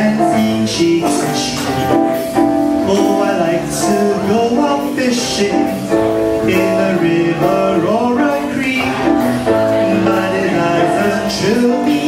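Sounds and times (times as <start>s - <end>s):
jazz band playing swing: 0.0s - 12.0s.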